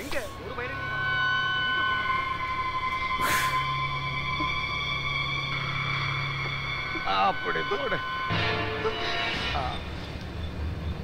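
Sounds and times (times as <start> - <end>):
held music tones: 0.0 - 11.0.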